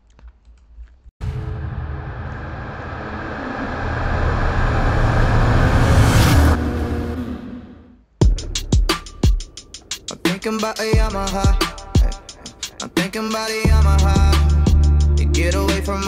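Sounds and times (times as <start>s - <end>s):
low noise-like intro sound: 1.2s - 8.0s.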